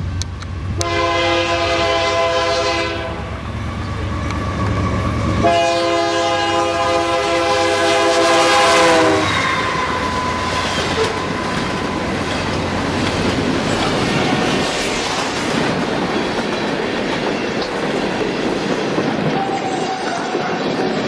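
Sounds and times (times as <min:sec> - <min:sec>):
freight train wheels clattering: 0:00.0 - 0:21.0.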